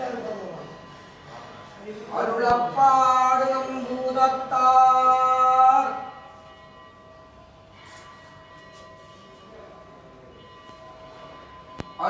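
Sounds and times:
faint steady ringing tones: 0.0 - 12.0
soft brushing sounds: 7.7 - 9.8.

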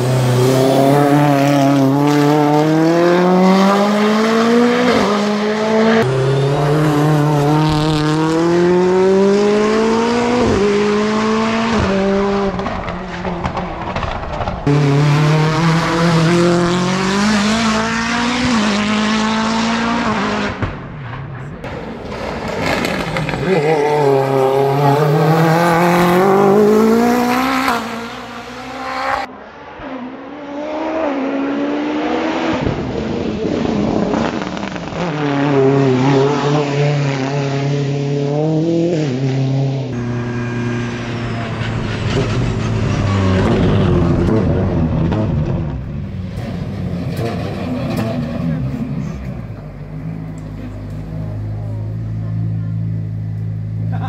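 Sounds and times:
race car engine revving: 0.0 - 54.0.

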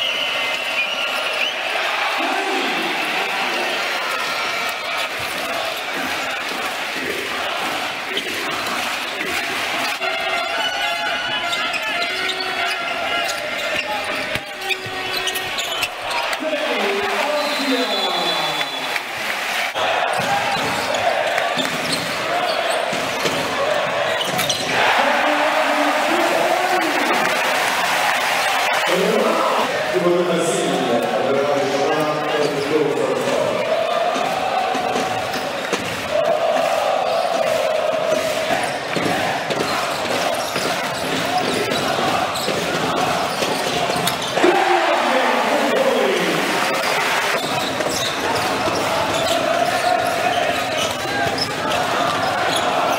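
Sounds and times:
arena crowd noise with voices: 0.0 - 52.9
basketball bouncing on court: 37.1 - 44.4, 46.6 - 52.9.

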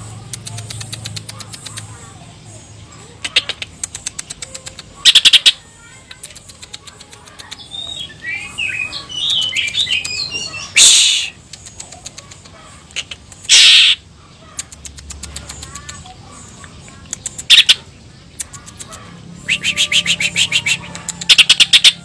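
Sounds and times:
bird singing: 0.1 - 22.0
short hissing bursts: 10.8 - 11.5, 13.3 - 14.1.

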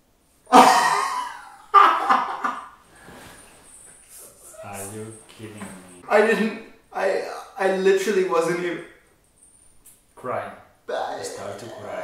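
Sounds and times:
man laughing: 0.5 - 2.7.

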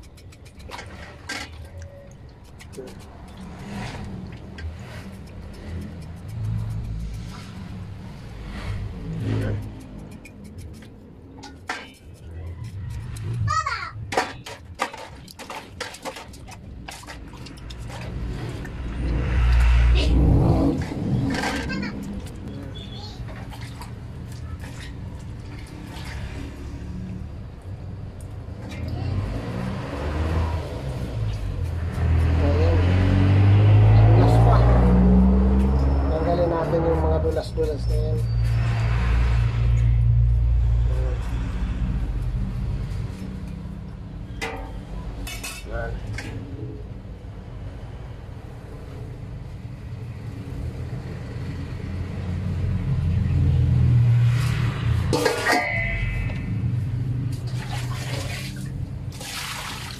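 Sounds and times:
motor vehicle rumble: 0.0 - 59.8
cleaver scraping meat: 9.0 - 13.5
cleaver clinking against metal basin: 44.3 - 46.3, 55.0 - 56.8.

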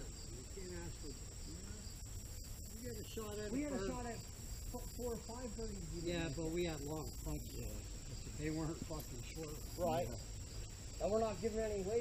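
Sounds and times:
crickets chirring: 0.0 - 12.0
men talking indistinctly: 0.0 - 12.0.

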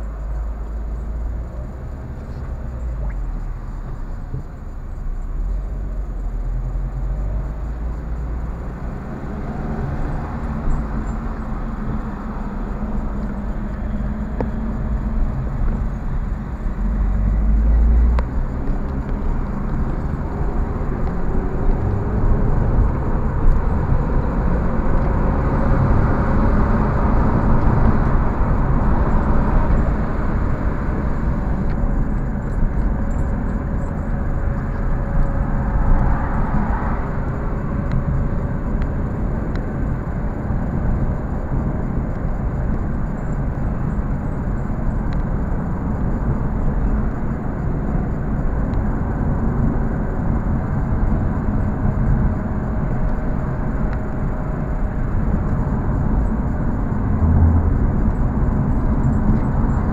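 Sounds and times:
car engine: 0.0 - 59.9
tyre road noise: 0.0 - 59.9.

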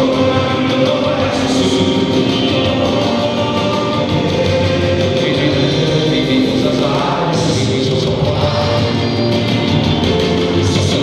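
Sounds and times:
person singing: 0.0 - 11.0
rock band playing live: 0.0 - 11.0.

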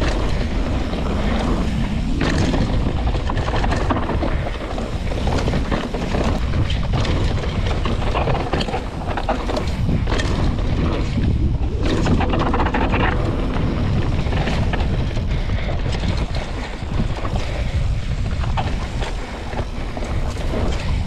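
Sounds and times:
bike rattling over bumps: 0.0 - 21.0
tyres rumbling on dirt: 0.0 - 21.0
wind buffeting microphone: 0.0 - 21.0.

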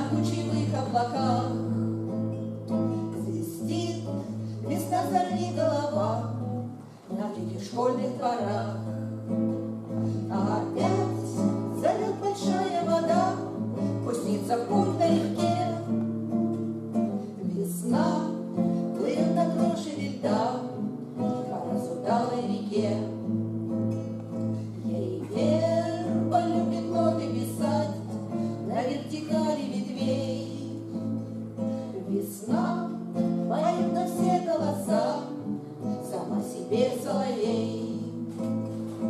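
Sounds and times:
women singing in harmony: 0.0 - 2.0, 3.0 - 9.1, 10.0 - 16.0, 17.4 - 23.4, 24.7 - 31.0, 31.9 - 38.4
strummed acoustic guitar: 0.0 - 39.0.

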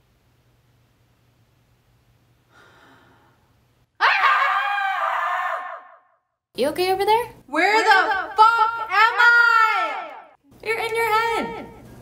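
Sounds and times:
young woman screaming: 4.0 - 6.1.

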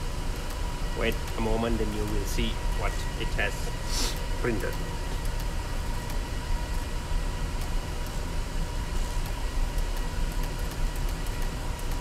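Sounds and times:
low machinery drone: 0.0 - 12.0.

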